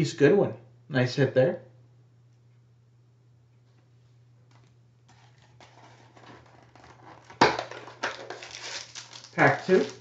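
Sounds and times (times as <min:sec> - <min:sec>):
card pack wrapper crinkling: 0:05.1 - 0:10.0.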